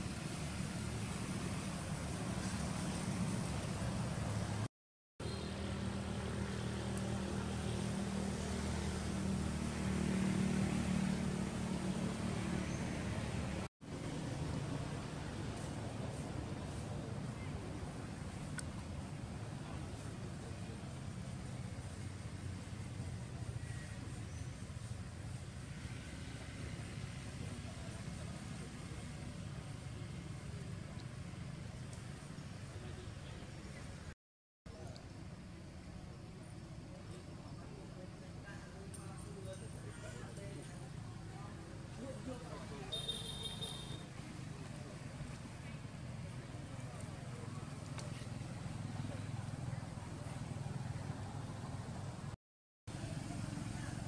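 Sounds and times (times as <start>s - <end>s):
road noise: 0.0s - 54.0s
traffic engine drone: 0.0s - 54.0s
vehicle passing by: 5.5s - 17.3s
low outdoor rumble: 34.7s - 54.0s.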